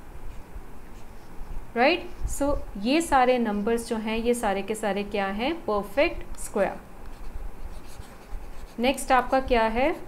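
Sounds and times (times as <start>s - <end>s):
woman speaking: 1.8s - 6.9s, 8.8s - 10.0s
pen scratching on paper: 7.1s - 10.0s.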